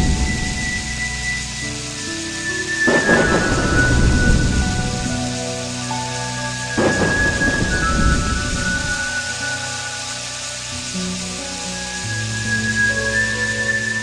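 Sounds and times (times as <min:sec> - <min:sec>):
slow ambient music: 0:00.0 - 0:14.0
steady hiss: 0:00.0 - 0:14.0.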